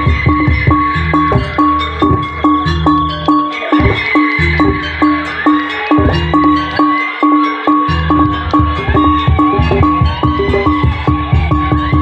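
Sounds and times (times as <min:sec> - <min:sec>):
metal gong-chimes struck: 0:00.0 - 0:12.0
wavering high melody: 0:00.0 - 0:12.0.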